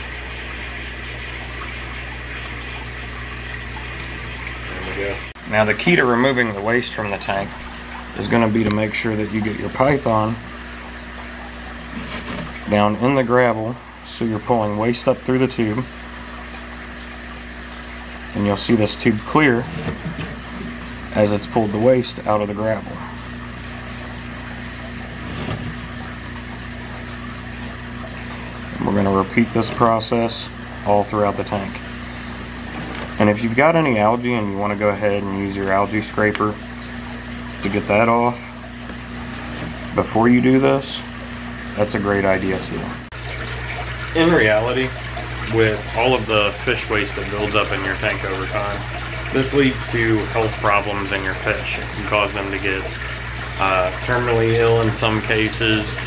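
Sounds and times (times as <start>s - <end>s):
low steady hum: 0.0s - 56.0s
running water rushing: 0.0s - 56.0s.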